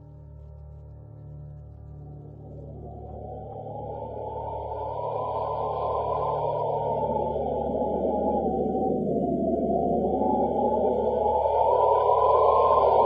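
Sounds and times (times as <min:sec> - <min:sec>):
wind-like moaning whoosh: 0:03.8 - 0:13.0.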